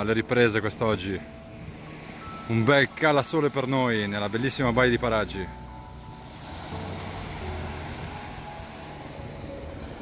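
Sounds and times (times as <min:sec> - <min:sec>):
small waves washing on sand: 0:06.2 - 0:10.0.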